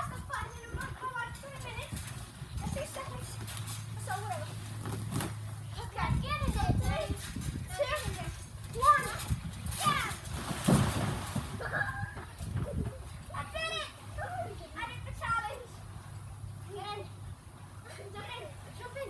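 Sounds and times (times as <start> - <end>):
trampoline mat thuds: 1.4 - 12.9
children shouting and squealing: 11.5 - 15.8.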